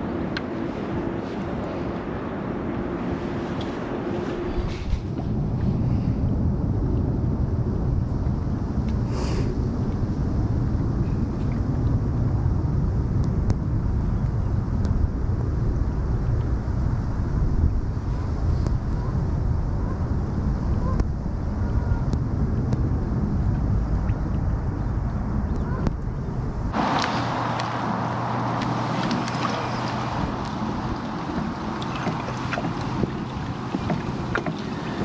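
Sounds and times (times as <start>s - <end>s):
rushing hiss of wind: 0.0s - 35.0s
wind buffeting microphone: 0.0s - 35.0s.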